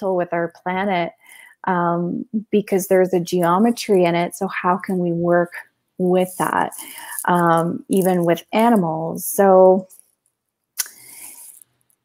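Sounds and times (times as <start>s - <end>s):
person drawing breath: 1.2s - 1.6s, 6.8s - 7.3s, 10.9s - 11.6s.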